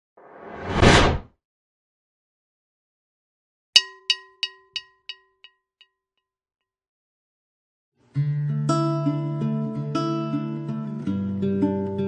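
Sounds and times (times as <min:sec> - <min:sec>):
whoosh sound effect: 0:00.2 - 0:01.2.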